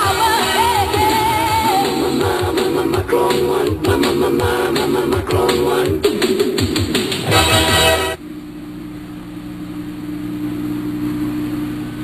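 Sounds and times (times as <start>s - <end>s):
cartoon theme music: 0.0s - 8.2s.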